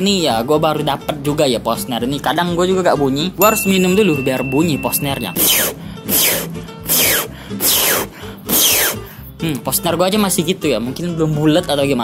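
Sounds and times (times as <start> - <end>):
beatboxed snare with falling whistle: 5.2 - 9.0.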